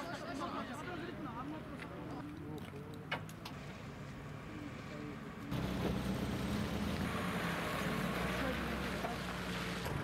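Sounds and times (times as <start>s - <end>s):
outdoor noise: 0.0s - 10.0s.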